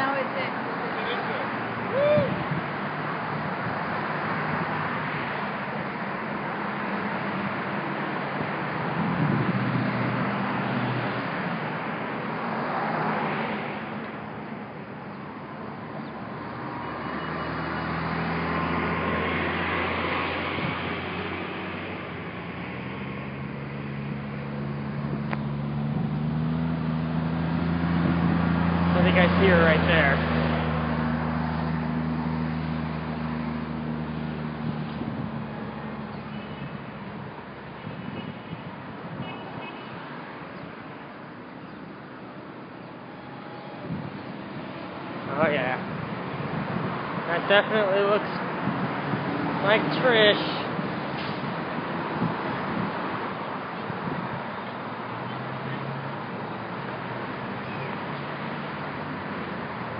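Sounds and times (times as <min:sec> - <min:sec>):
cars passing: 0:00.0 - 0:59.9
vehicle engine hum: 0:00.0 - 0:59.9.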